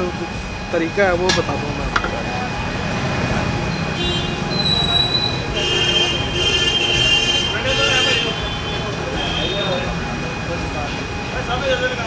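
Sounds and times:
traffic: 0:00.0 - 0:12.0.

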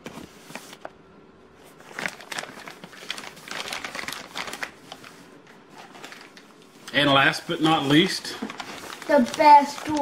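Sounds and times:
plastic packaging crinkling: 0:01.7 - 0:07.1, 0:07.8 - 0:10.0.

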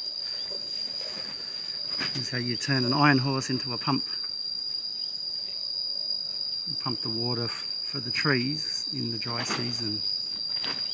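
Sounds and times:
insects trilling: 0:00.0 - 0:10.9.

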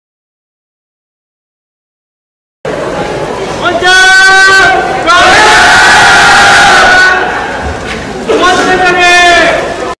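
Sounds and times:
group shouting team cheer: 0:03.8 - 0:07.6.

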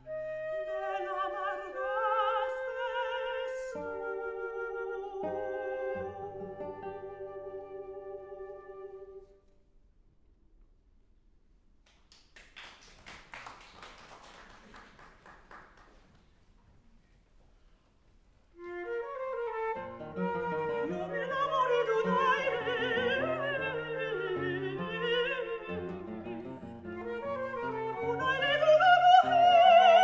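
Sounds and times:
flute melody: 0:00.0 - 0:09.5, 0:18.6 - 0:30.0
plucked classical guitar: 0:19.7 - 0:28.3.

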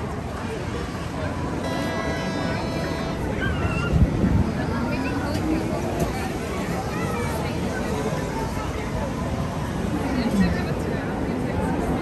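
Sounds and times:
monorail train rumble: 0:00.0 - 0:12.0
high-pitched whine: 0:01.6 - 0:03.6.

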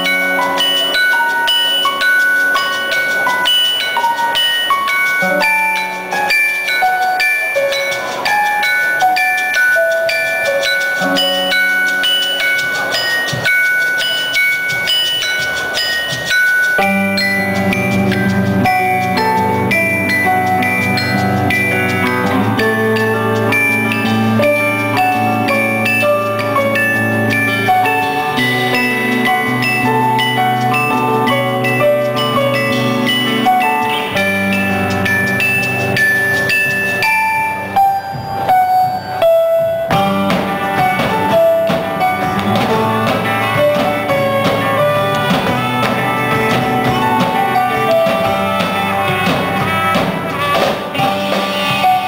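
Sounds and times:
live band instrumental: 0:00.0 - 0:52.0
ringing bell-like notes: 0:00.0 - 0:52.0.

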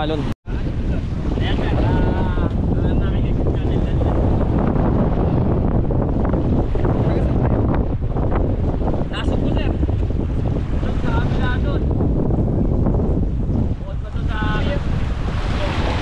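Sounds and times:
wind buffeting microphone: 0:00.0 - 0:16.0
small waves washing: 0:00.5 - 0:16.0.

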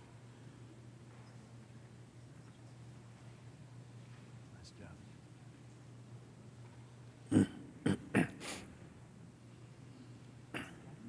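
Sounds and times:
faint steady hum: 0:00.0 - 0:11.0
person coughing: 0:07.3 - 0:08.6, 0:10.5 - 0:11.0.

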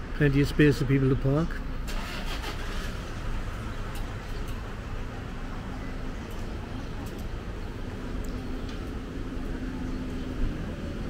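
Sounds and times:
distant motorway traffic rumble: 0:00.0 - 0:11.0.

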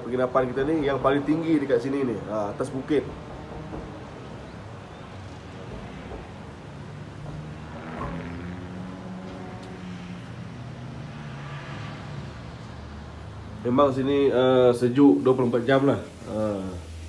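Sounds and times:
traffic engine hum: 0:00.0 - 0:14.9
vehicle passing: 0:00.0 - 0:16.3.

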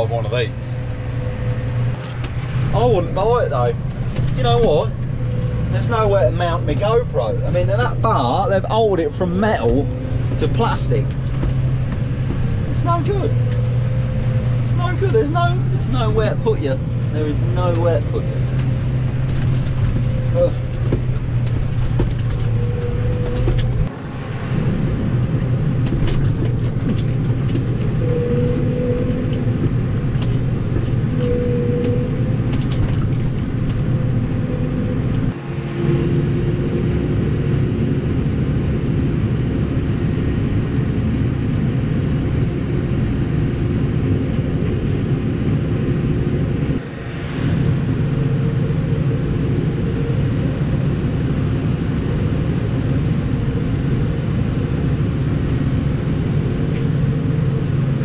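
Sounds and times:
tractor diesel engine drone: 0:00.0 - 0:58.0.

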